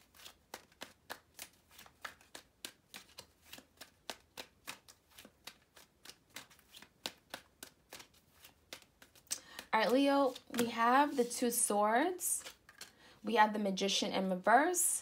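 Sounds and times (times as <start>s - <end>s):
cards being shuffled: 0.0s - 13.0s.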